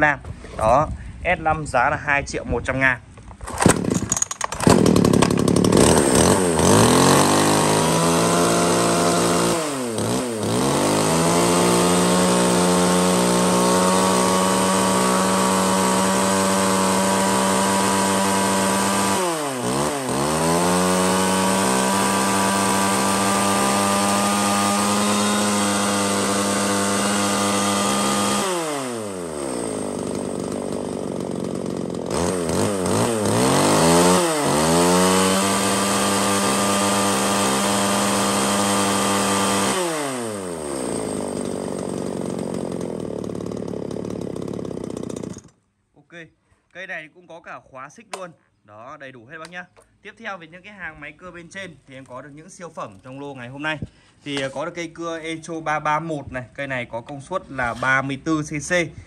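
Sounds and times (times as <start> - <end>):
chainsaw engine running: 3.4 - 45.6.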